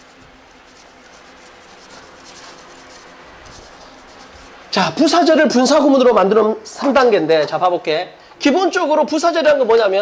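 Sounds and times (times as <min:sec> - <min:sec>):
eraser rubbing on chalkboard: 0:00.0 - 0:04.6.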